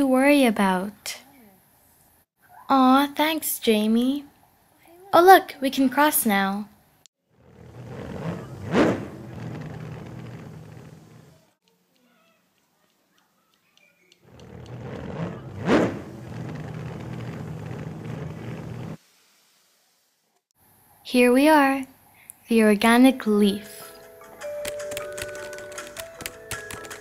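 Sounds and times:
car driving past: 7.3s - 11.5s, 14.2s - 19.0s.

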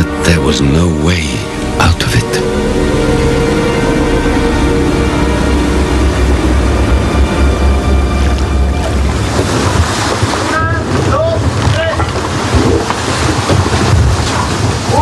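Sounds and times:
low rumble: 0.1s - 11.6s
wind and waves rushing: 1.4s - 15.0s.

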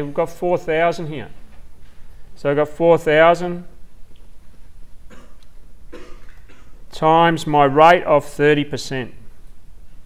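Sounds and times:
man coughing softly: 5.1s - 6.9s.

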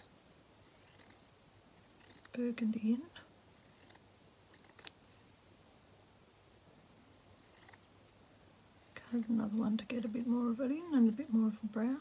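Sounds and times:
scissors snipping through fabric: 1.8s - 2.3s.

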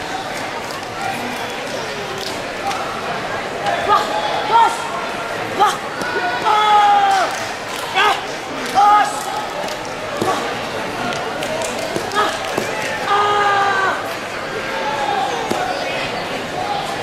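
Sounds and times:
crowd chatter in a hall: 0.0s - 17.0s.

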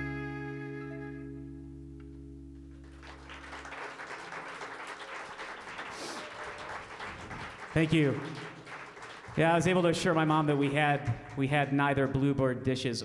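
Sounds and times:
acoustic guitar and bass chord: 0.0s - 3.2s
audience applause: 2.8s - 12.2s
man saying thank you: 7.7s - 8.5s.

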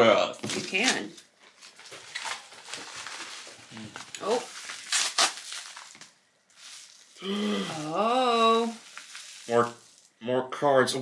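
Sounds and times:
paper and mailer rustling: 0.4s - 10.1s.

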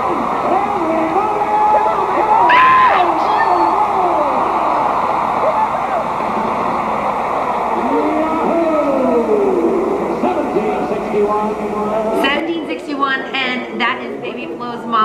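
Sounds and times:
crowd din in an arena: 0.0s - 15.0s
drawn-out echoing voices: 0.0s - 15.0s.

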